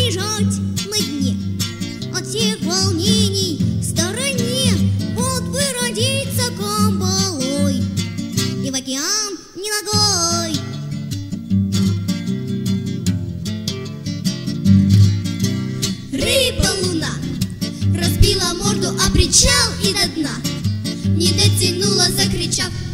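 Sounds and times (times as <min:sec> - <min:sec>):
acoustic guitar: 0:00.0 - 0:22.9
person singing: 0:16.1 - 0:20.5.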